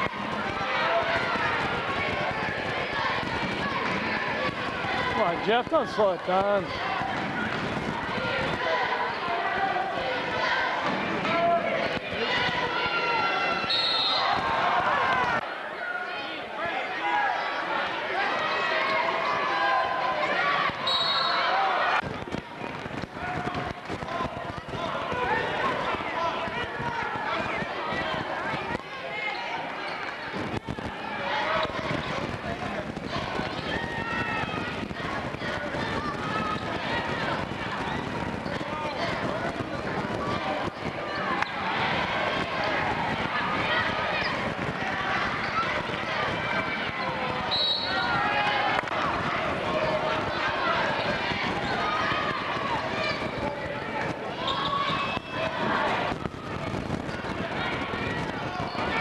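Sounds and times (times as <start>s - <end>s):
spectators talking and calling out: 0.0s - 59.0s.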